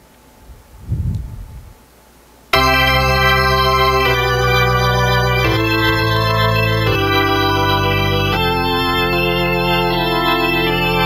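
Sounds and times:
electric organ chords: 2.6s - 11.0s.

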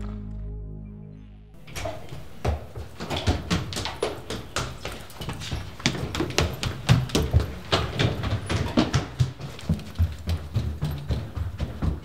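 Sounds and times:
quick footsteps on stairs and carpet: 1.6s - 12.0s.

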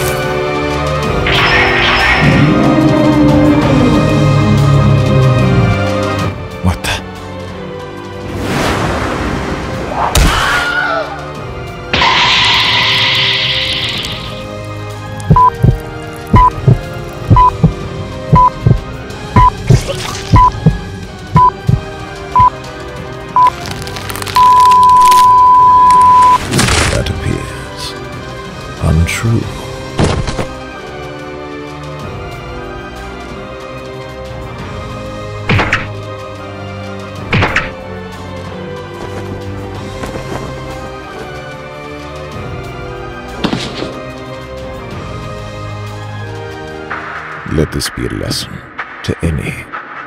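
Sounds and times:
dramatic background music: 0.0s - 50.0s
heartbeat double thump: 15.3s - 19.7s, 20.3s - 22.5s
short high beep: 24.4s - 26.4s.

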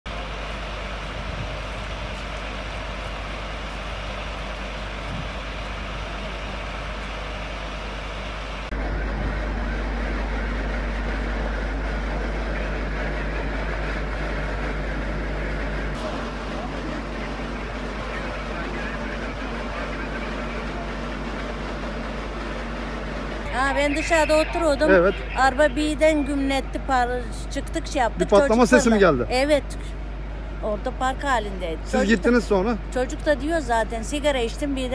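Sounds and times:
diesel engine running: 0.1s - 34.9s
street noise: 0.1s - 34.9s.

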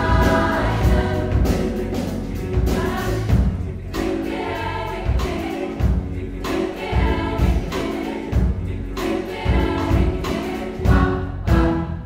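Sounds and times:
bass: 0.0s - 12.0s
choir singing in harmony: 0.0s - 12.0s
drum kit beat: 0.0s - 12.0s
piano: 0.0s - 12.0s.

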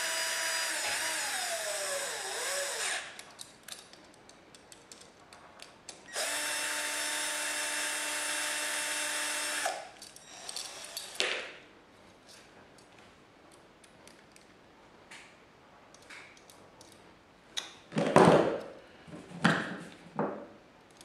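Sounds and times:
cordless drill running: 0.0s - 3.1s, 6.1s - 11.2s.

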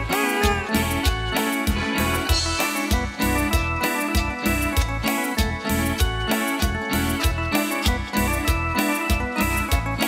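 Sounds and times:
bass beat: 0.0s - 10.0s
guitar: 0.0s - 10.0s
keyboard tune: 0.0s - 10.0s
live band playing: 0.0s - 10.0s.

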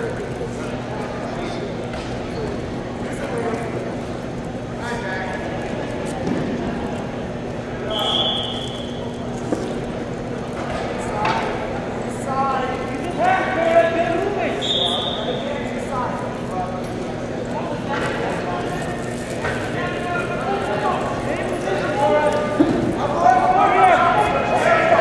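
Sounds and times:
steady hum: 0.0s - 25.0s.

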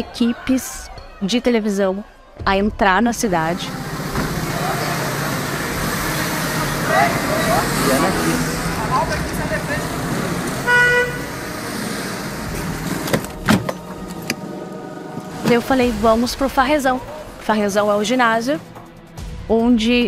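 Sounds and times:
vehicle engines and traffic: 2.8s - 19.1s
people shouting: 3.6s - 9.9s
car horn toot: 3.6s - 11.7s.

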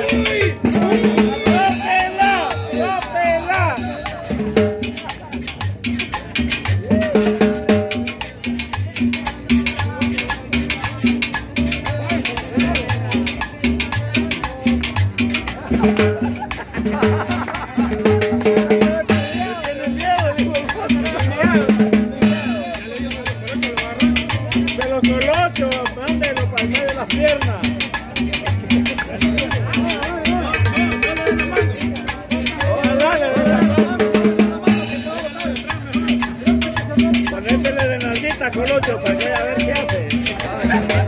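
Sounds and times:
latin dance band music: 0.0s - 41.0s
steady drum beat: 0.0s - 41.0s.

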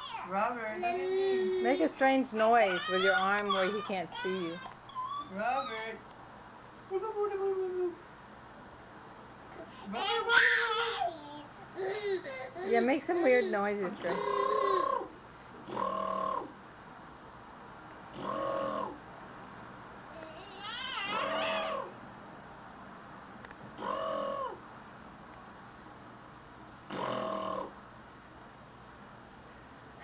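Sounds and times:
man making animal-like noises: 14.0s - 16.5s, 18.2s - 19.0s.

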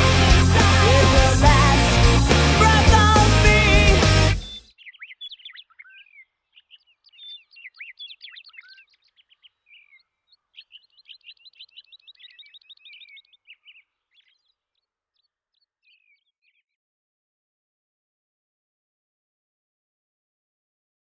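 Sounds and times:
songbird singing: 2.6s - 16.8s.

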